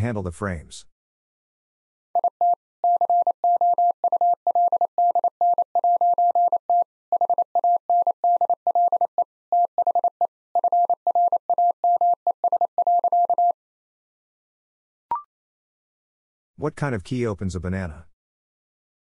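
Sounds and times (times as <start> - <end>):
morse code beeps: 2.2 - 13.6.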